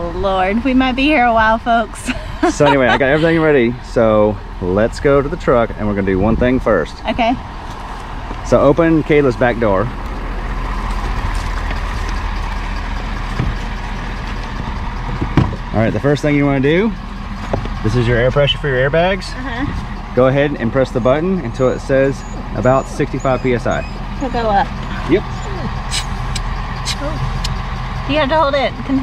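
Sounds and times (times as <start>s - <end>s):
truck engine idling: 0.0s - 29.0s.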